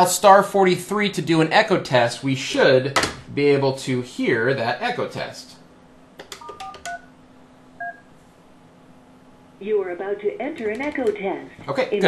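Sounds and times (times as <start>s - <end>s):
faint steady hum: 0.0s - 12.0s
phone keypad tone: 6.4s - 7.1s, 7.8s - 8.0s.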